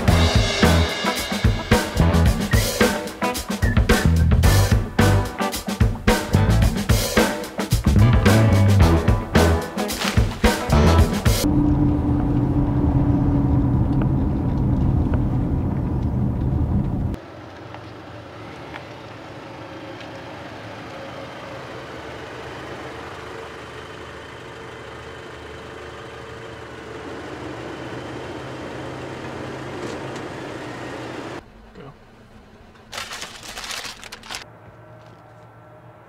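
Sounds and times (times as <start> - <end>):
car engine and road drone inside: 10.8 - 32.9
car passing on road outside: 11.4 - 23.0.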